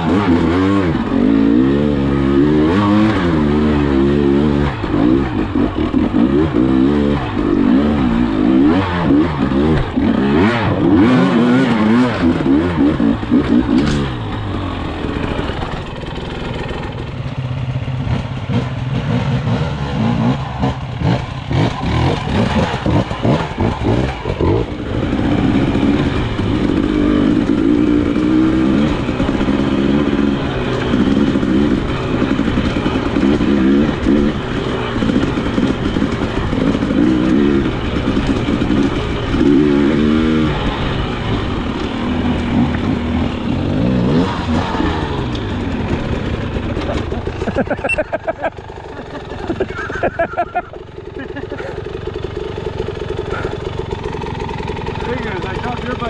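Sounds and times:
dirt bike engine revving: 0.0 - 56.0
knocks and clatter: 11.8 - 19.1.

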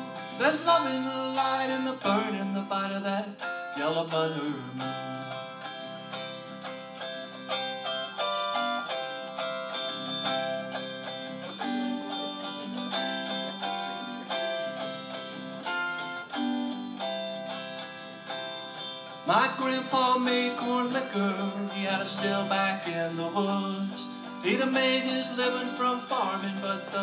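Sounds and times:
plucked string instrument solo: 0.0 - 27.0.

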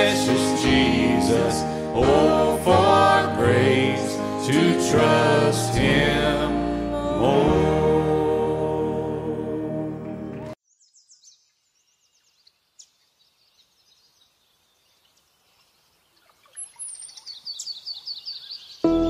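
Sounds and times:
music: 0.0 - 10.6
bird singing falling chirps: 10.6 - 19.0
faint high bird chirps: 10.6 - 19.0.

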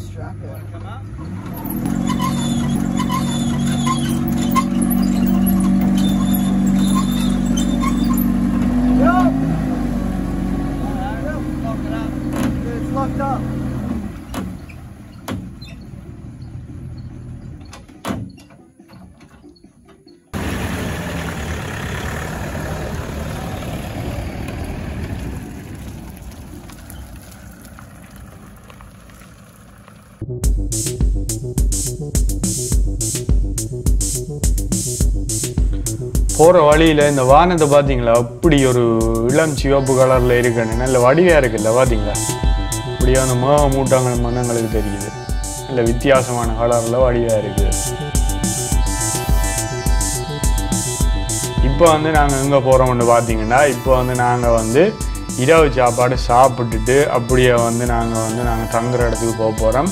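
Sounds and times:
vehicle engine running: 0.0 - 18.0, 20.3 - 59.9
hand winch squeaking and clicking: 0.5 - 9.4, 14.1 - 20.4.

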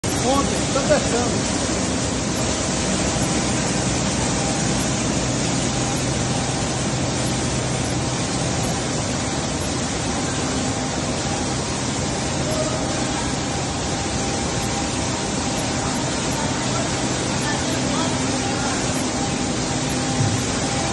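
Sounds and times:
oil press machines running: 0.0 - 20.9.

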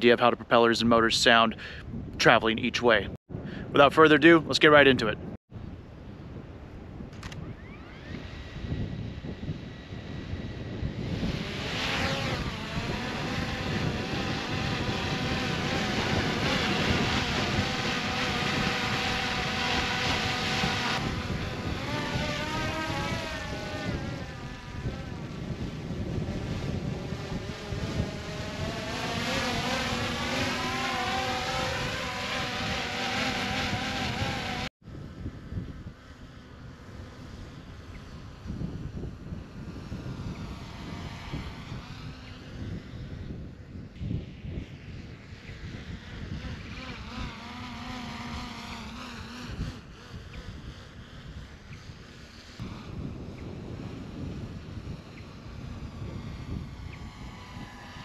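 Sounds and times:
wind rumbling on microphone: 0.0 - 58.0
drone propellers humming: 4.0 - 58.0.

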